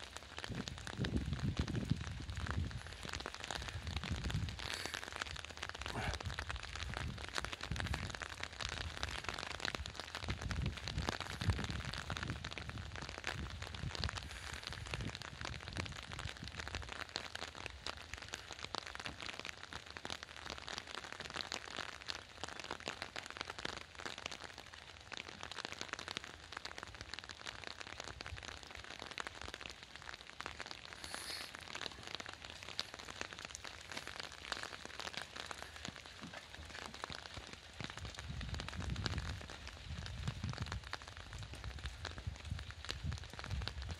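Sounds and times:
rain pattering on umbrella: 0.0 - 43.9.

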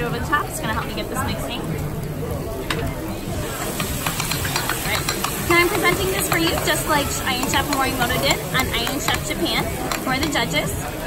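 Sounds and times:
sauce and rice sizzling: 0.3 - 11.0.

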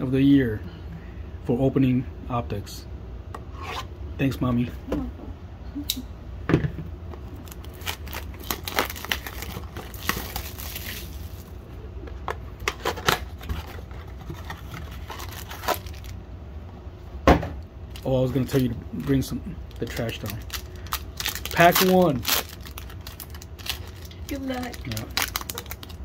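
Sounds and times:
plastic wrap crinkling: 7.3 - 11.6, 12.6 - 16.2, 17.9 - 26.0
cardboard tearing: 7.6 - 11.4, 12.8 - 16.1.

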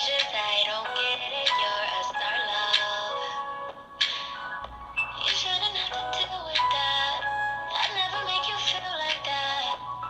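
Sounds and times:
pop song through phone speaker: 0.0 - 10.0.

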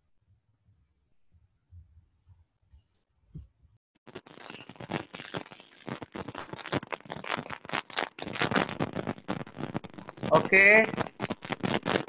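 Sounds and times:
crackling garbled call audio: 4.0 - 12.0.

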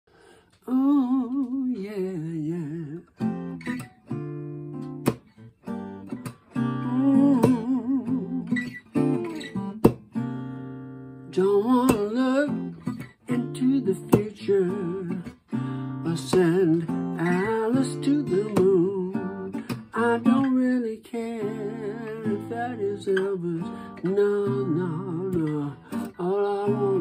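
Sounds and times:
man singing: 0.6 - 3.2, 6.6 - 8.6, 11.3 - 27.0
acoustic guitar strumming: 1.4 - 27.0.

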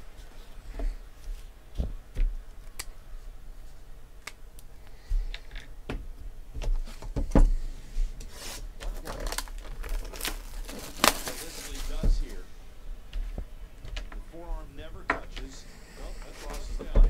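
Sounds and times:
plastic wrap tearing and crinkling: 8.3 - 12.4.

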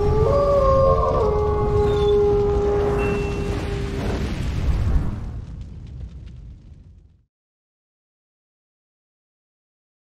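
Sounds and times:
wolf howling: 0.0 - 4.2
deep rumble: 0.0 - 7.2.

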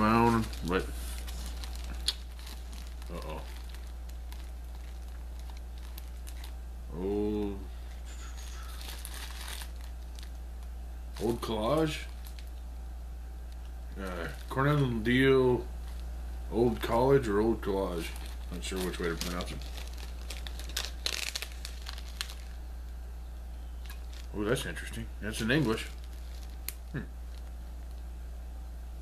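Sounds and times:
plastic bag crinkling: 0.0 - 12.6, 13.5 - 22.6, 23.8 - 28.1
low steady hum: 0.0 - 29.0.

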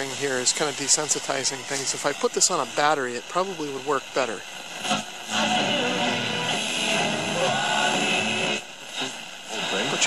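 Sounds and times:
music from small radio speaker: 3.6 - 10.0.

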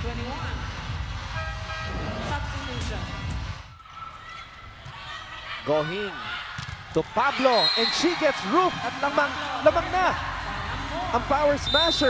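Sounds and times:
music: 0.0 - 3.8
arena crowd noise: 0.0 - 12.0.

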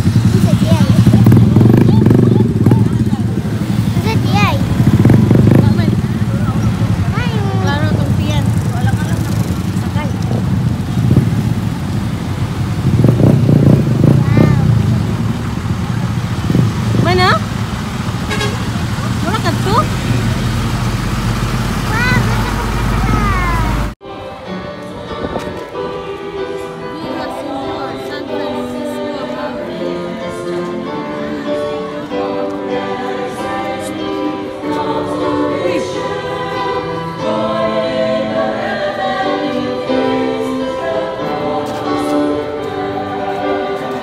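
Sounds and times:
truck engine rumbling: 0.0 - 24.0
voices calling out: 0.0 - 24.0
choir singing a slow hymn: 24.0 - 44.0.

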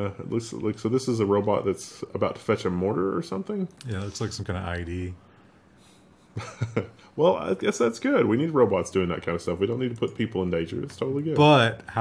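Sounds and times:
person speaking: 3.0 - 5.2.

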